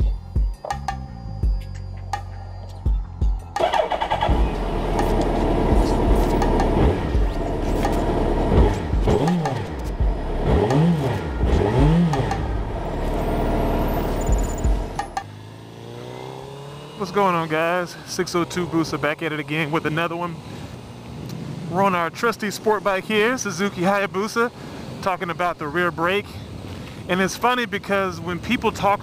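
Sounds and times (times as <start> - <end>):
music: 0.0 - 11.4, 14.0 - 15.3
motorcycle engine revving: 3.6 - 24.3.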